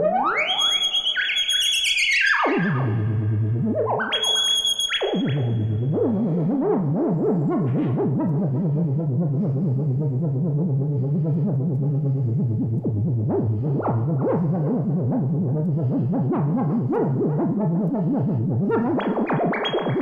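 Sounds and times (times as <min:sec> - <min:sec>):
synthesizer swooping tone: 0:00.0 - 0:20.0
wobbling synthesizer drone: 0:00.0 - 0:20.0.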